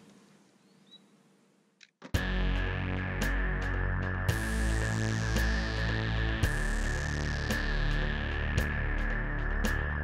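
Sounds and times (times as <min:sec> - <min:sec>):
bird chirp: 0:00.4 - 0:01.2.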